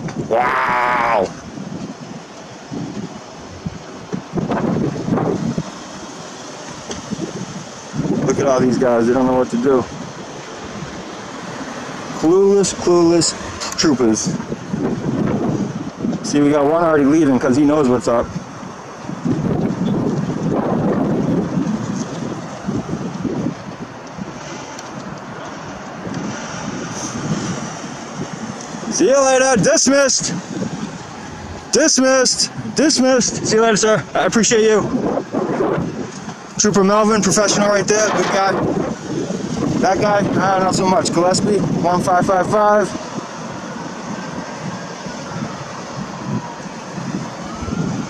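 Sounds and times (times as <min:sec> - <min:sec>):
traffic rumble passing close: 0:00.0 - 0:48.0
wind buffeting microphone: 0:00.0 - 0:48.0.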